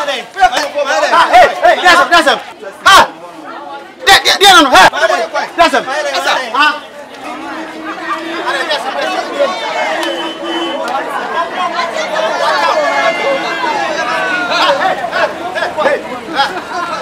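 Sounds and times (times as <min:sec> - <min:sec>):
chatter of onlookers: 0:00.0 - 0:17.0
people arguing: 0:00.0 - 0:17.0.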